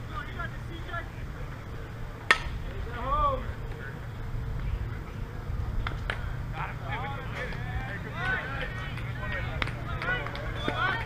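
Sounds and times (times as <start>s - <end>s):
distant players calling out: 0.0s - 11.0s
steady low rumble: 0.0s - 11.0s.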